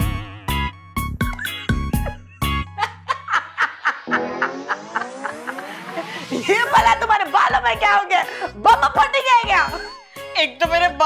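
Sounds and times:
woman laughing hard: 2.3s - 6.8s
comic rising sound effect: 3.8s - 6.7s.

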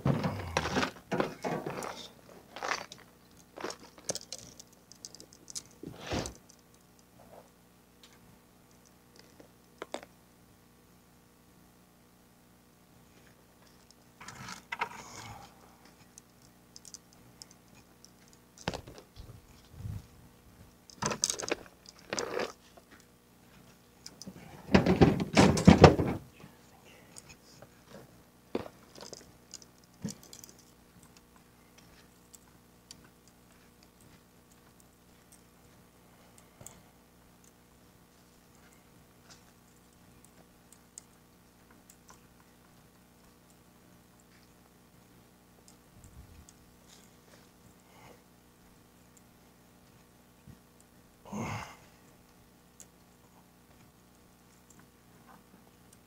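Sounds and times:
fishing gear knocking and rattling: 20.9s - 22.6s.

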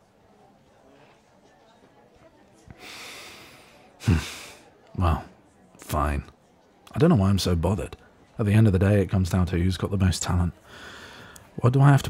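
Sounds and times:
man breathing close to microphone: 2.8s - 4.6s, 10.6s - 11.5s.

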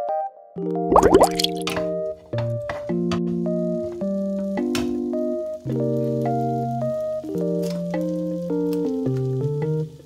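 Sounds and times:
keyboard and guitar music: 0.0s - 10.0s
rising bubbly bloop effects: 0.9s - 1.7s.

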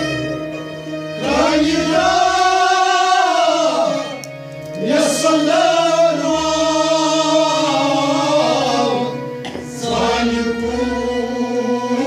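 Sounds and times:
voices singing together: 1.1s - 12.0s.

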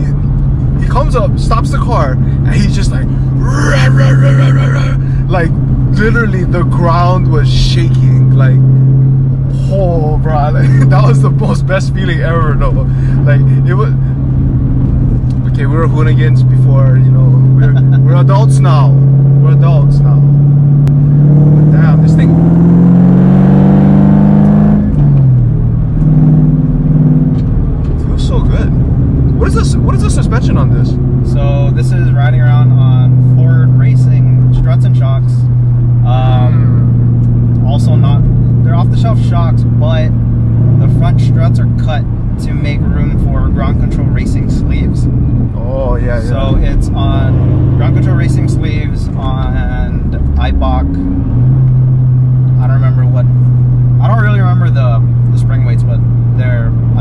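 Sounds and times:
car engine low drone: 0.0s - 57.0s.

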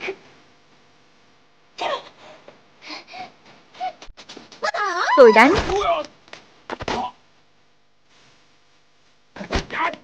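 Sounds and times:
sharp knocks and slaps of blows: 5.5s - 7.1s.

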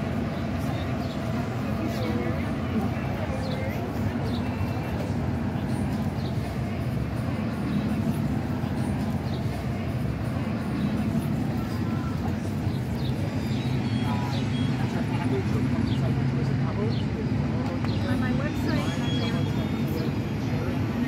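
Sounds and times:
indistinct voices: 0.0s - 21.0s
traffic rumble: 0.0s - 21.0s.

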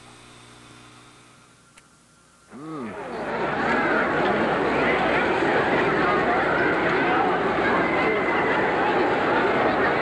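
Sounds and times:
faint hum and hiss: 0.0s - 7.8s.

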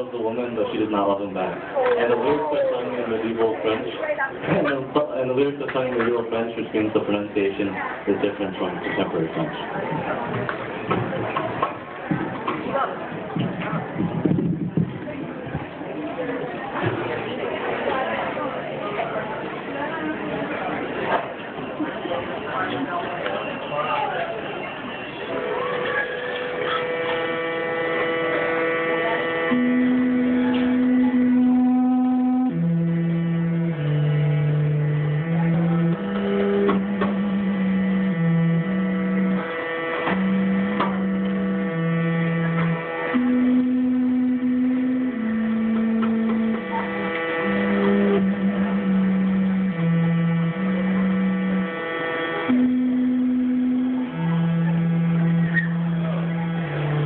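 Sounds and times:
steady drone tone: 24.5s - 57.0s
early music ensemble playing: 25.7s - 57.0s.

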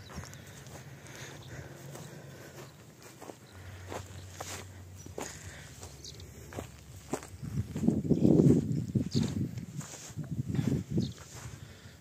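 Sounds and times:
footsteps on sandy grassy ground: 0.0s - 12.0s.

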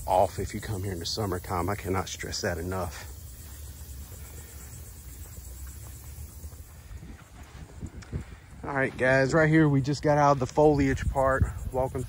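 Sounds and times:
footsteps on sandy dirt: 0.0s - 11.9s.

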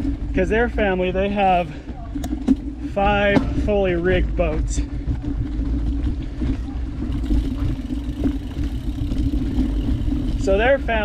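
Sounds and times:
steady low hum: 0.0s - 11.0s
tyres rolling over dirt and rock: 0.0s - 11.0s
wind rumble on microphone: 0.0s - 11.0s.

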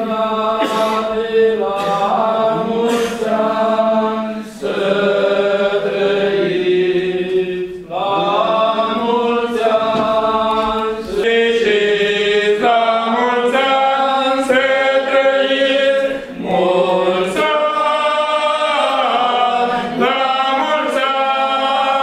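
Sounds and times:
cantors chanting: 0.0s - 22.0s.

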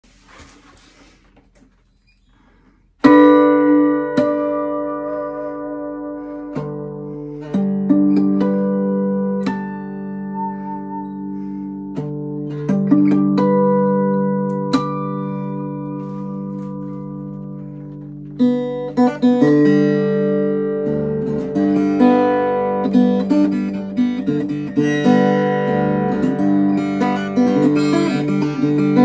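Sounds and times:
fingerpicked acoustic guitar: 0.1s - 29.0s.

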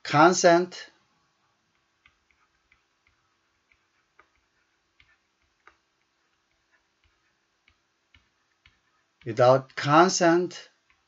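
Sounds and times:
stylus tapping on pen tablet: 1.7s - 9.8s, 10.8s - 11.0s.

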